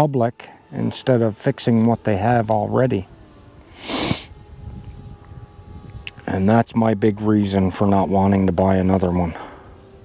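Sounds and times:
man sniffing: 0:03.7 - 0:04.4.

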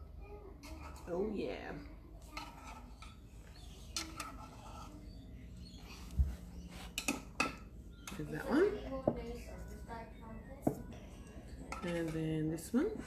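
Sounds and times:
metal spoon clinking and scraping: 0:02.2 - 0:05.2.

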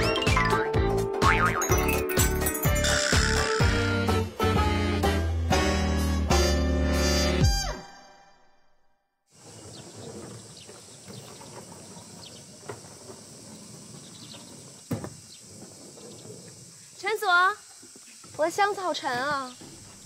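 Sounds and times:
steady high hiss: 0:09.4 - 0:20.0.

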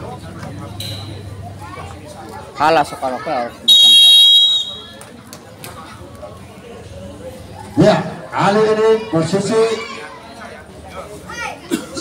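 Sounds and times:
faint crowd noise: 0:00.0 - 0:12.0
referee's whistle blast: 0:03.7 - 0:05.0.

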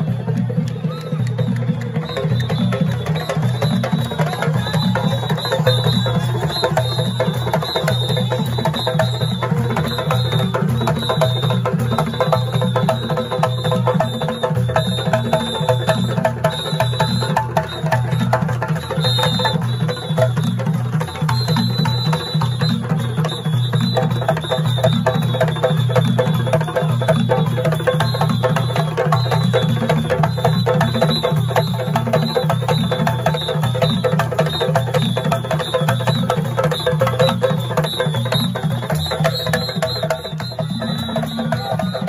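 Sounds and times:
drum ensemble playing: 0:01.3 - 0:42.0.

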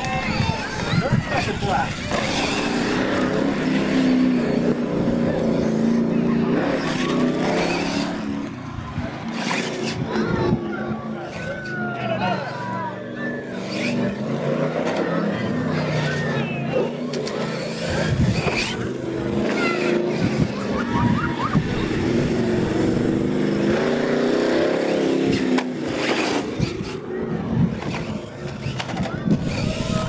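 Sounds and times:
crowd chatter: 0:00.0 - 0:30.0
toy truck motor revving: 0:00.0 - 0:30.0.

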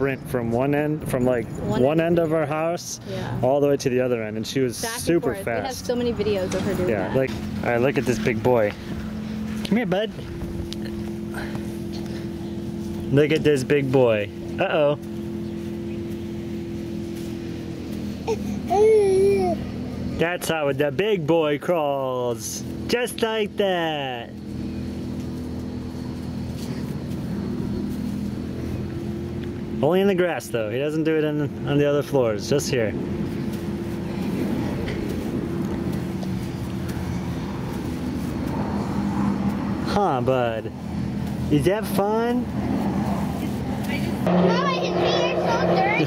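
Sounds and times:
engine drone: 0:00.0 - 0:46.0.

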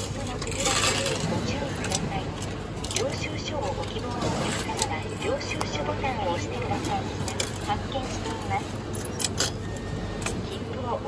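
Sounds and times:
coins clattering into tray: 0:00.0 - 0:01.4.

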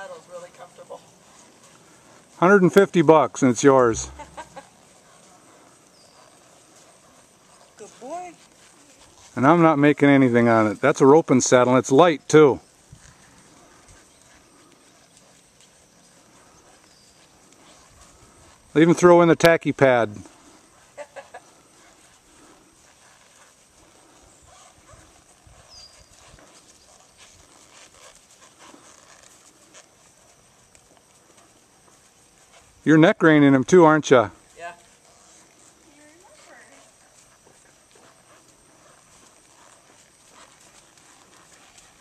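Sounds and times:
horse hoofbeats on sand: 0:00.0 - 0:11.1, 0:12.8 - 0:42.0.

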